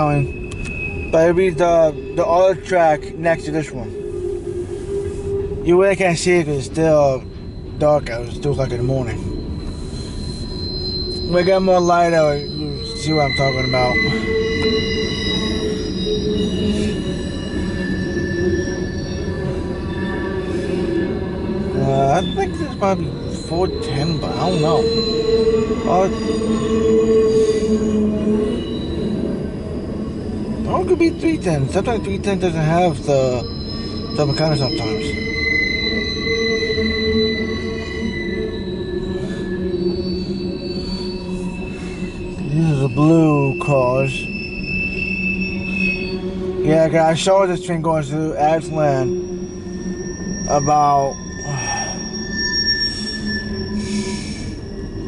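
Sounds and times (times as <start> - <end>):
high-pitched wheel squeal: 0.0 - 55.0
rumble of passing train cars: 0.0 - 55.0.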